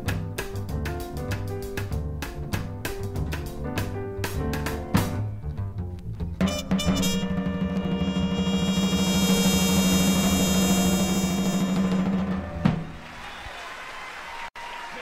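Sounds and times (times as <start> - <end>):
live jazz band playing: 0.0 - 13.0
drum hits: 6.3 - 13.1
audience applause: 11.3 - 15.0.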